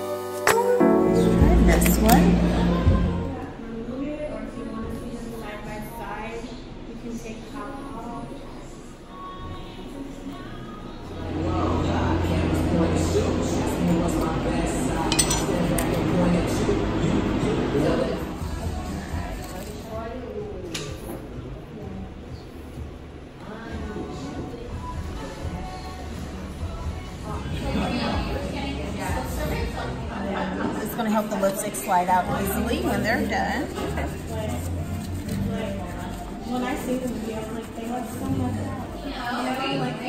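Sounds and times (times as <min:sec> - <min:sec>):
indistinct background speech: 0:00.8 - 0:40.0
metal knife clinking on countertop: 0:15.1 - 0:15.6.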